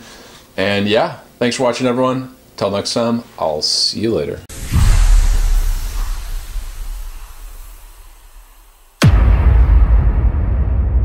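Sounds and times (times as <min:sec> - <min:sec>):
hiss: 0:04.5 - 0:09.1
deep rumble: 0:04.5 - 0:11.0.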